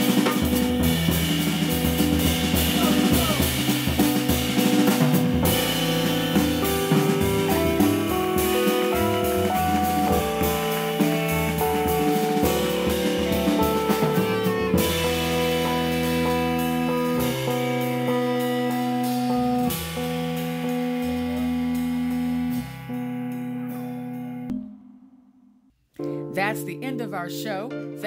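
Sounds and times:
drum and cymbal strokes: 0:00.0 - 0:22.4
bass clarinet: 0:00.0 - 0:23.1
upright bass: 0:00.0 - 0:24.5.

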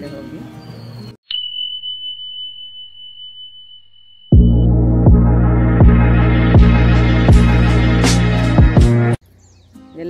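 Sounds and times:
high bell-like chime: 0:01.2 - 0:05.7.

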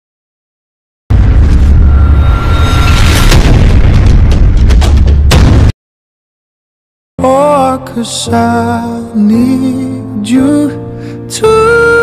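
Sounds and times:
cinematic boom with deep rumble: 0:01.1 - 0:05.7.

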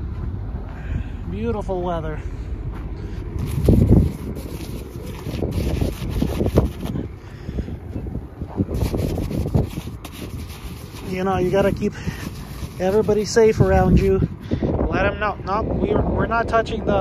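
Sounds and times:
wind buffeting microphone: 0:00.0 - 0:17.0
gloved hand scraping plastic: 0:03.4 - 0:07.2, 0:08.5 - 0:14.1.

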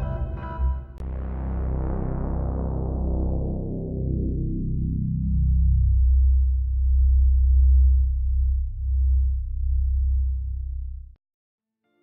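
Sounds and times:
deep low sustained drone: 0:01.0 - 0:11.2.

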